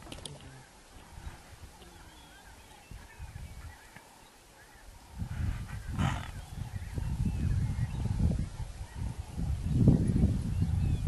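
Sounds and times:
low rough animal calls: 0.5s - 9.6s.

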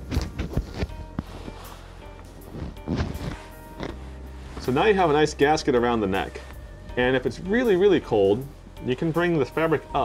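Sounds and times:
fabric rustling against microphone: 0.0s - 10.0s
quiet background music: 0.0s - 10.0s.

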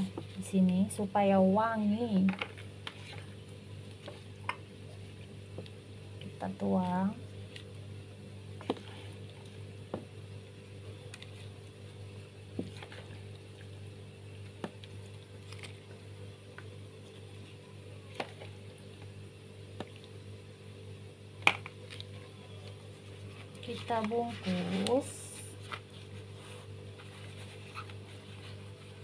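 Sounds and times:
steady low hum: 0.0s - 29.0s
wet mixture squishing: 2.4s - 7.8s, 8.6s - 10.1s, 10.8s - 20.2s.

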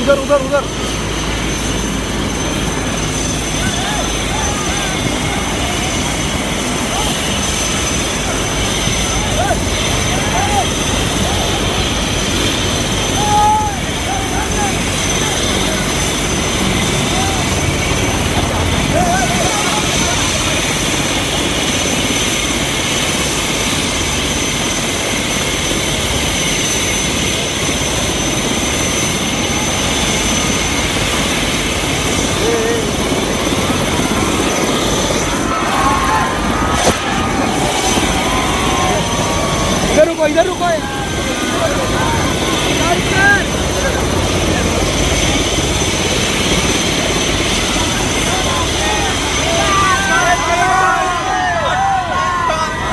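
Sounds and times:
helicopter rotor rushing noise: 0.0s - 52.9s
turbine high whine: 0.0s - 52.9s
voices shouting: 3.4s - 21.7s, 32.2s - 52.9s.

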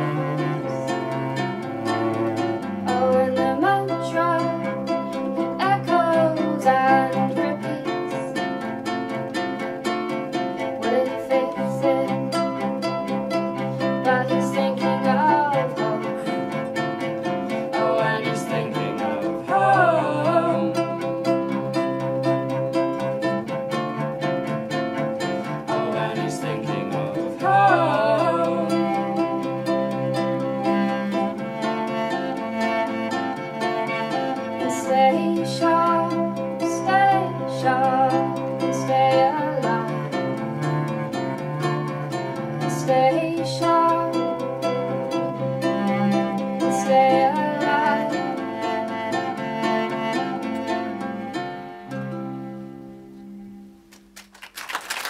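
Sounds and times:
bowed cello: 0.0s - 53.8s
acoustic guitar: 0.0s - 55.0s
ukulele: 0.0s - 55.0s.

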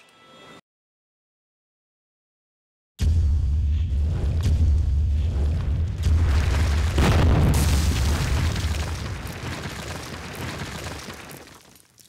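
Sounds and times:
deep rumble: 3.0s - 9.3s
crash: 3.0s - 12.0s
explosive burst: 4.5s - 10.8s
wall cracking and bursting: 5.9s - 12.0s.

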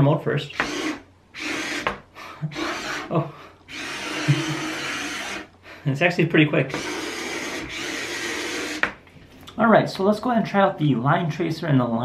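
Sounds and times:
toy robot motors whirring: 0.5s - 3.1s, 3.7s - 5.5s, 6.7s - 9.0s.

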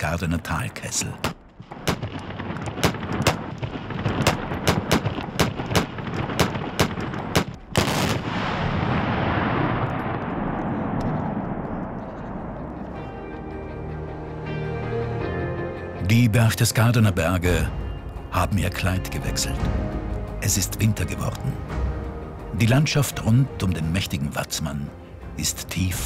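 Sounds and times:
sharp black-powder bangs: 1.2s - 8.5s
blast with echoing rumble: 1.4s - 13.2s.

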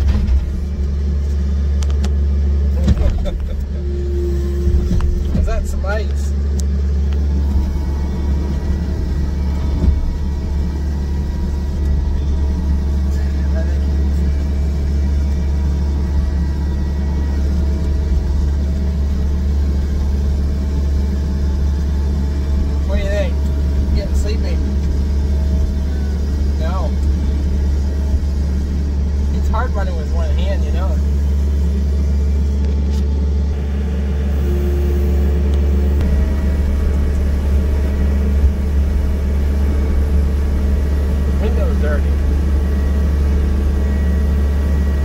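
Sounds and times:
loader engine running: 0.0s - 45.0s.

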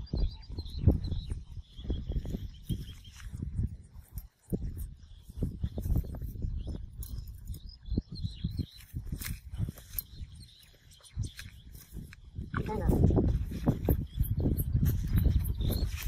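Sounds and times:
barbed wire clicks and rustles: 2.6s - 7.7s, 8.5s - 16.0s.

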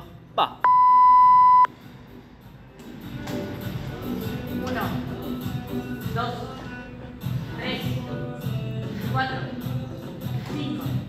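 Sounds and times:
timer long beep: 0.7s - 1.7s.

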